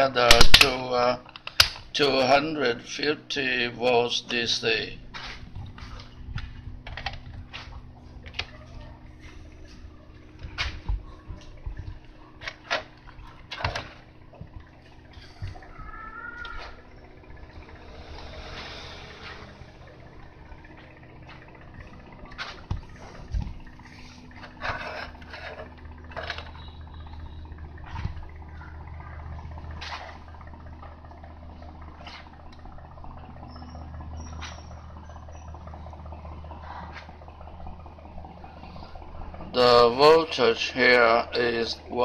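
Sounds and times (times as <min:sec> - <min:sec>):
low hum: 0:00.0 - 0:42.0
test probes clicking and tapping: 0:00.4 - 0:02.1.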